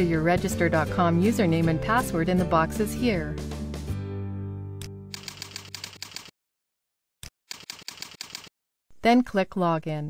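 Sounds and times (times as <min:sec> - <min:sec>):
computer keyboard typing: 0:05.2 - 0:06.3, 0:07.5 - 0:08.5.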